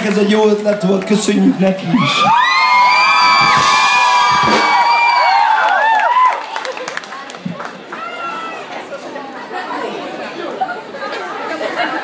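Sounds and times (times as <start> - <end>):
crowd chattering: 0.0 - 2.5, 6.2 - 12.0.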